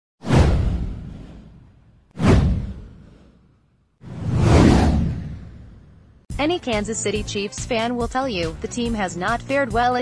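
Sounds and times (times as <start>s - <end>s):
whoosh sound effect: 0.2s - 6.0s
deep low boom: 0.3s - 3.2s, 4.1s - 6.2s.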